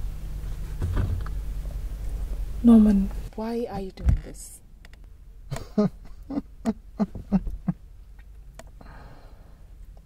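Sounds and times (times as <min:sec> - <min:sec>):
man chuckling: 0:05.5 - 0:07.8.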